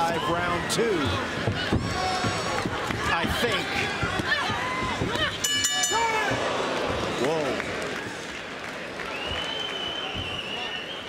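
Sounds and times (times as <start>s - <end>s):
crowd shouting: 0.0s - 9.3s
ring bell struck rapidly: 5.4s - 6.4s.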